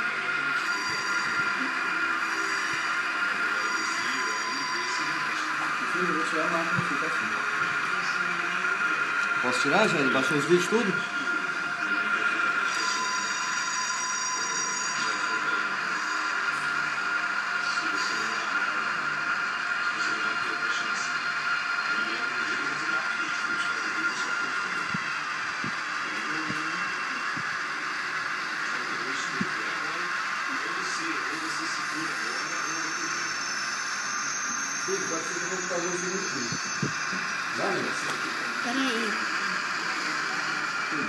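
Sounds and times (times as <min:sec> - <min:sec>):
train humming with thin whine: 0:00.0 - 0:41.0.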